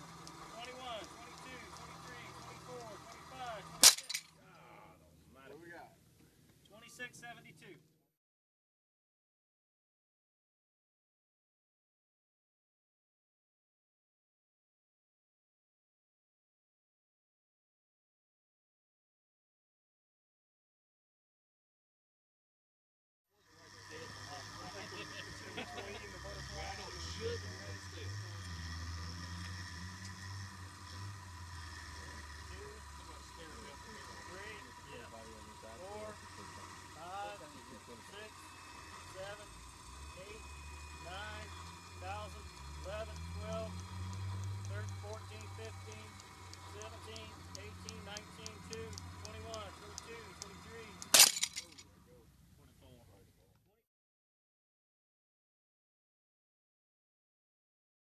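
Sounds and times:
faint clicks: 0.0s - 3.3s, 43.2s - 51.1s
short clatter: 3.8s - 4.4s, 51.0s - 51.8s
steady low hum: 23.4s - 53.5s
people chattering: 23.5s - 28.3s.

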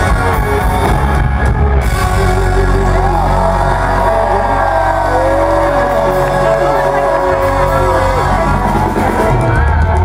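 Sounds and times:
live country band playing: 0.0s - 10.0s.

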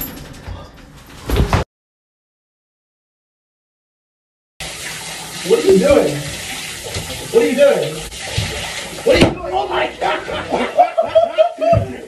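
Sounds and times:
elevator mechanical rattling: 0.0s - 1.6s.

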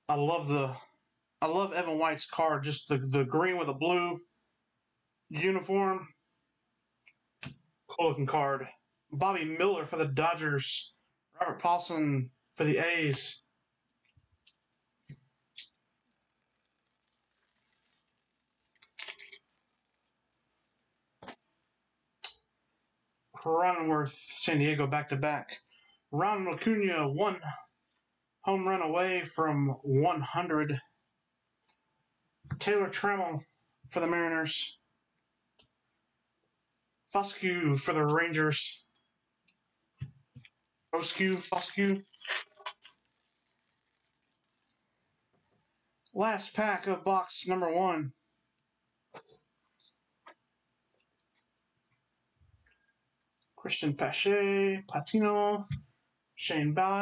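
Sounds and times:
cards flicking and crackling: 15.5s - 20.0s, 40.4s - 44.7s
trading cards rustling: 15.6s - 19.9s, 40.4s - 44.8s
trading cards sliding and flicking: 40.4s - 44.0s.

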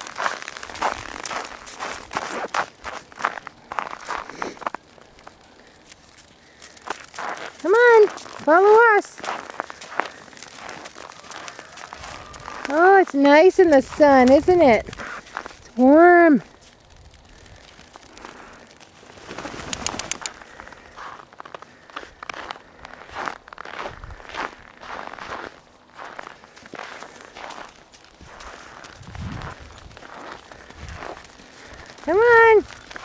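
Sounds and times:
footsteps crunching on snow: 0.0s - 33.0s.

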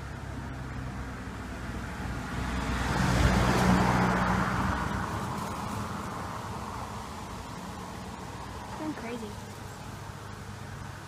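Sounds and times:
vehicle passing by: 0.0s - 11.0s.

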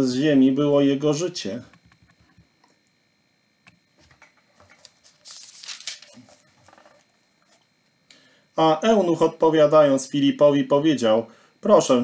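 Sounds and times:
book rustling and tapping: 4.0s - 7.6s.

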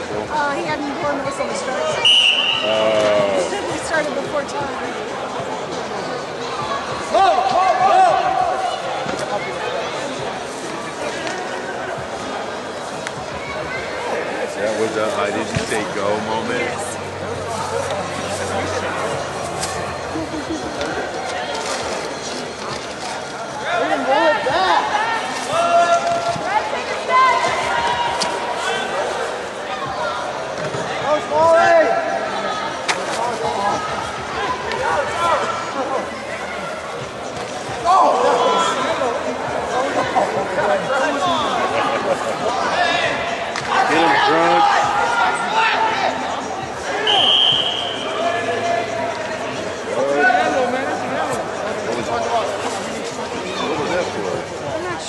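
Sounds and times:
crowd chatter: 0.0s - 55.0s
referee's whistle blast: 2.0s - 2.8s, 47.0s - 48.2s
shouted voices calling: 42.7s - 49.4s.

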